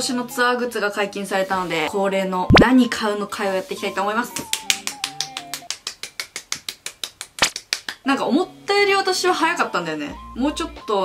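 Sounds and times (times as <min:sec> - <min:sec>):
quick hand clapping: 0:04.3 - 0:08.1.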